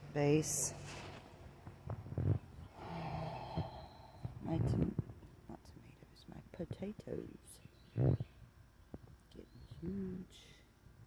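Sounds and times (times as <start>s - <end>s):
person exhaling: 2.7s - 4.3s
person sighing: 2.8s - 4.3s.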